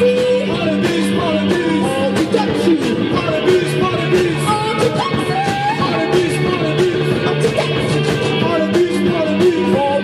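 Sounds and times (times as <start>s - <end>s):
electric guitar: 0.0s - 10.0s
person singing: 0.0s - 10.0s
steady drum beat: 0.0s - 10.0s.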